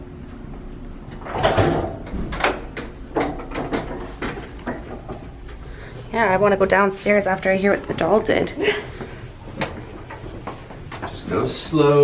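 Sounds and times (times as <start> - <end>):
door opening: 1.1 - 5.1
footsteps: 3.9 - 11.7.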